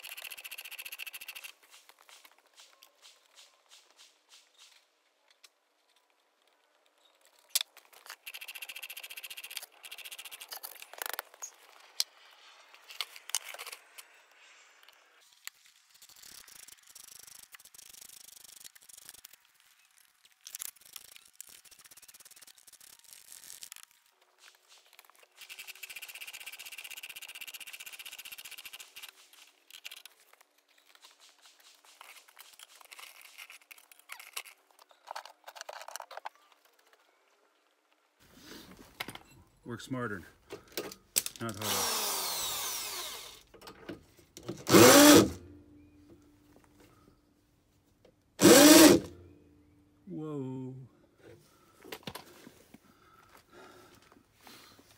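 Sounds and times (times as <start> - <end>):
scissor jack squeaking and rattling: 0.0 - 2.3, 8.0 - 11.6, 24.5 - 30.2, 31.7 - 36.3, 44.6 - 45.4, 48.4 - 49.1.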